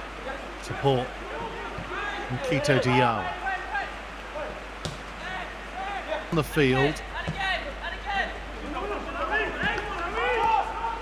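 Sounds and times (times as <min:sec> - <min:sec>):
ball being kicked: 0:04.8 - 0:05.1.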